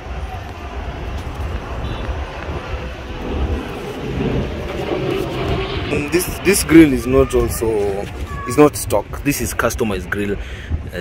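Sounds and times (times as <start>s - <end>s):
low vehicle rumble: 0.0s - 8.6s.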